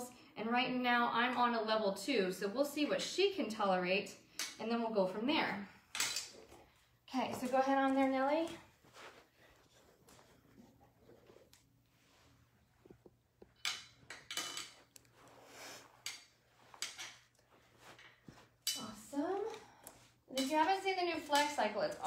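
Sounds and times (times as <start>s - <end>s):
faint low hum: 0.0s - 22.0s.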